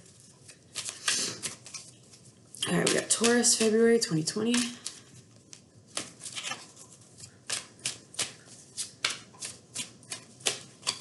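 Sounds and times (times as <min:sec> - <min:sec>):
cards snapping while shuffled: 0:00.4 - 0:01.9, 0:04.5 - 0:06.7, 0:07.4 - 0:11.0.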